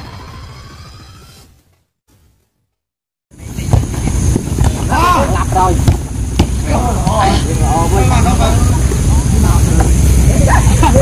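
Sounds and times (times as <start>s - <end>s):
wind rumbling on microphone: 3.3s - 11.0s.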